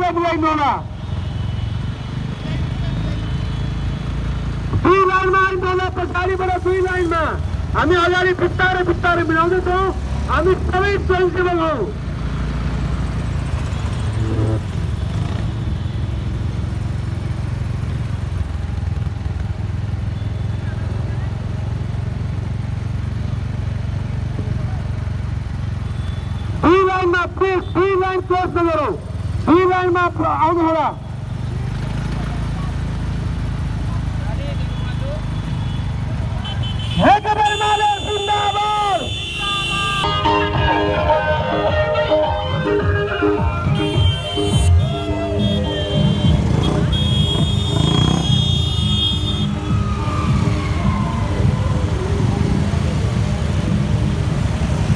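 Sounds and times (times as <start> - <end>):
voice over loudspeaker: 0.0 - 1.0, 4.8 - 12.0, 26.6 - 31.0, 36.9 - 39.2
motorcycle engines rumbling: 0.0 - 54.9.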